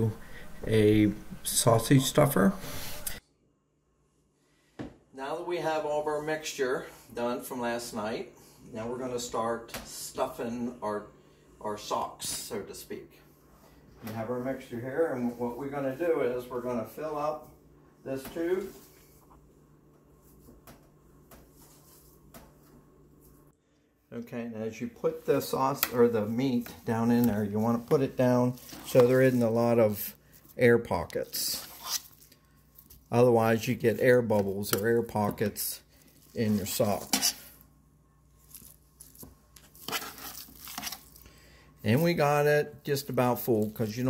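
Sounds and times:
meat squishing by hand: 25.8s - 33.2s, 38.4s - 41.2s.

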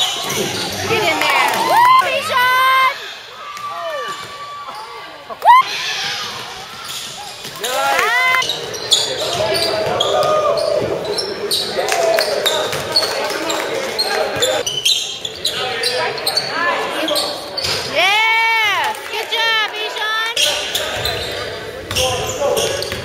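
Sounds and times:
spectators chattering: 0.0s - 23.0s
sneakers squeaking: 6.0s - 18.0s, 20.4s - 23.0s
basketball bouncing on court: 21.9s - 23.0s.

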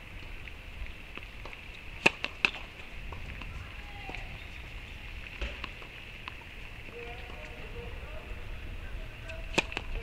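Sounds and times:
tennis racket hitting ball: 1.4s - 4.3s, 5.4s - 6.4s, 9.3s - 10.0s.

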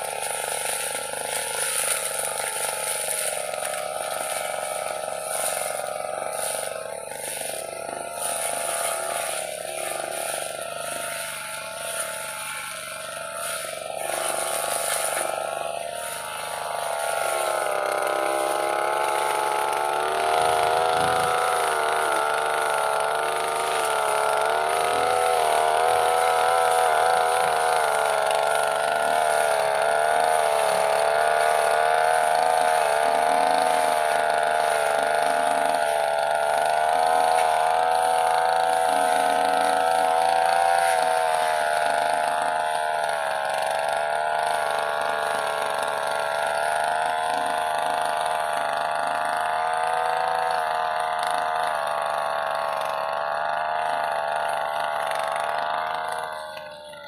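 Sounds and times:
brush cutter engine running: 0.0s - 57.0s.

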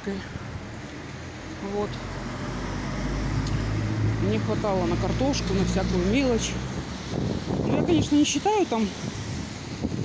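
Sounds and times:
passing vehicle engine and tyres: 0.2s - 10.0s.

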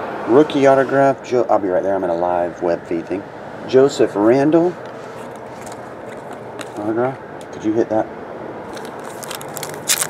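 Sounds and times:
foil wrapper crinkling: 8.7s - 10.0s.

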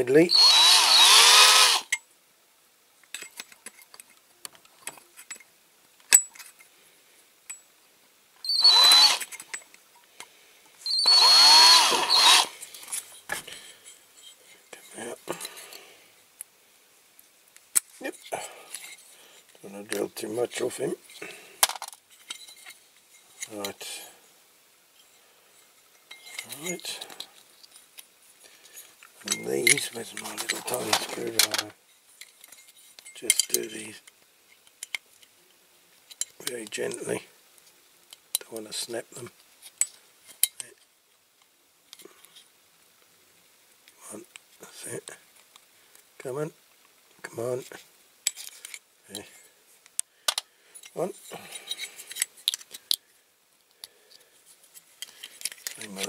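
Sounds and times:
small electric drill whining: 0.3s - 1.9s, 8.4s - 9.4s, 10.8s - 12.6s
handling sounds: 25.9s - 33.9s, 53.7s - 56.0s.

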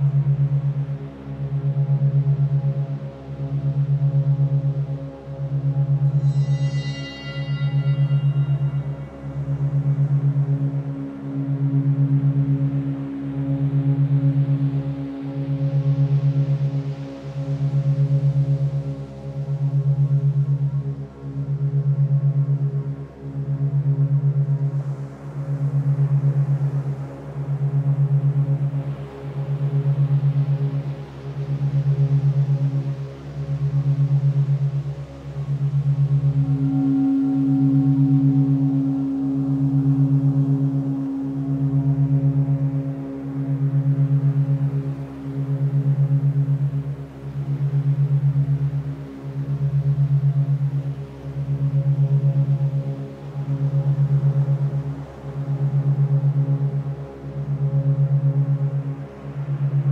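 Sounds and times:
pulsing electronic drone: 0.0s - 14.9s, 15.5s - 59.9s
faint held higher tones: 0.0s - 24.8s, 29.4s - 59.9s
bright sustained tone: 4.7s - 11.6s, 34.8s - 48.4s.

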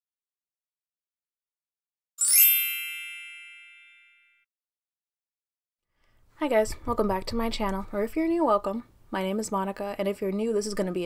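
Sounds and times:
bright chime ringing: 2.2s - 4.4s.

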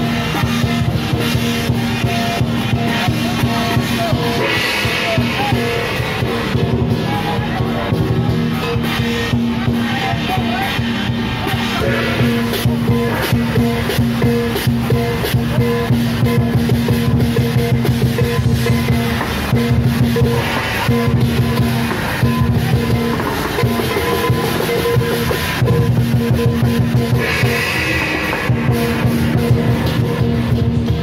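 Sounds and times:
cymbals: 0.0s - 31.0s
drums beaten in fast rhythm: 0.0s - 31.0s.

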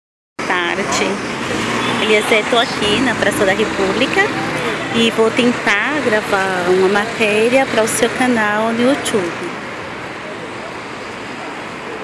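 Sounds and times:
people's voices: 0.4s - 12.0s
road traffic hum: 0.4s - 12.0s.

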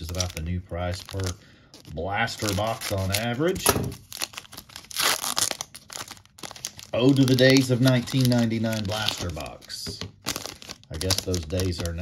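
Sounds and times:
foil wrapper tearing and crinkling: 0.0s - 12.0s.

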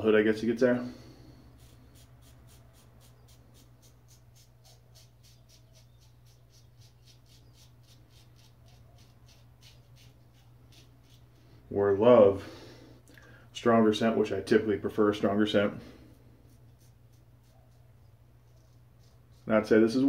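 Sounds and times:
low steady hum: 0.0s - 20.0s
razor scraping stubble: 0.9s - 11.6s, 15.2s - 20.0s.

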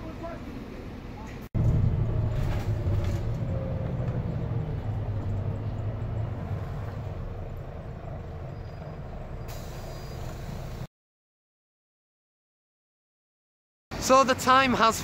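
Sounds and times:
bus engine rumble: 0.0s - 10.9s
hiss: 9.5s - 10.9s.

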